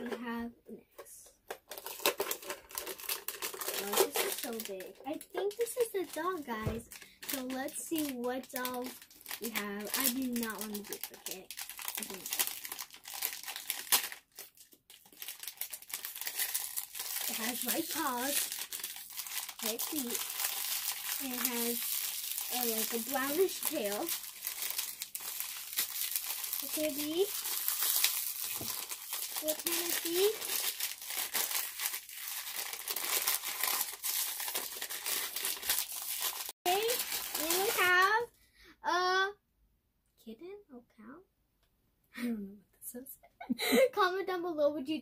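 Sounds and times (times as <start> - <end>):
foil packet crinkling: 1.6 - 38.1.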